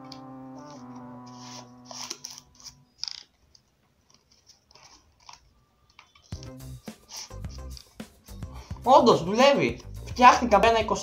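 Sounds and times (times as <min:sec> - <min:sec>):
paper banknote crinkling: 0:00.1 - 0:03.2.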